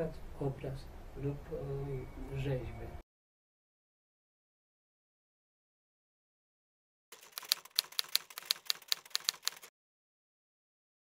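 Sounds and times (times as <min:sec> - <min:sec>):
sharp keyboard key clicks: 0:07.2 - 0:09.7.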